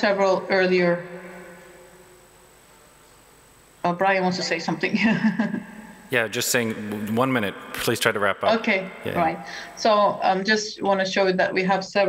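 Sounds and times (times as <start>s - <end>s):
woman speaking: 0.0s - 1.0s, 3.9s - 5.6s, 8.5s - 12.0s
background line hiss: 0.0s - 12.0s.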